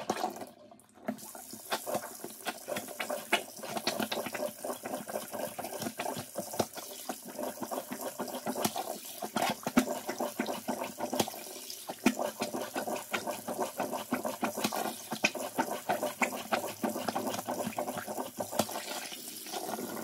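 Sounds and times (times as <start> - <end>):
water splashing in a sink: 0.0 - 20.0.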